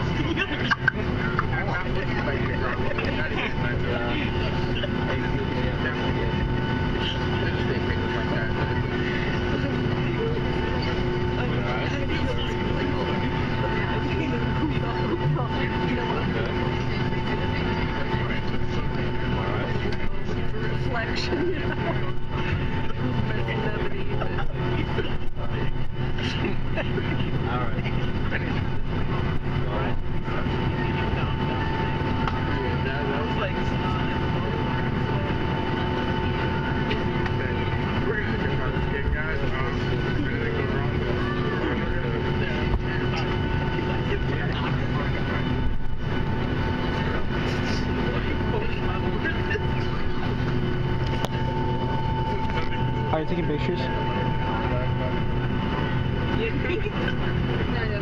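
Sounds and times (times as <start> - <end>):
aircraft engine hum: 0.0 - 58.0.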